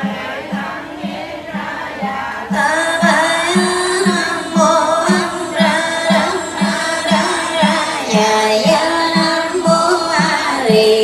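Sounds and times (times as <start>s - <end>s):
steady low beat: 0.0s - 11.0s
voices chanting a melody: 0.0s - 11.0s.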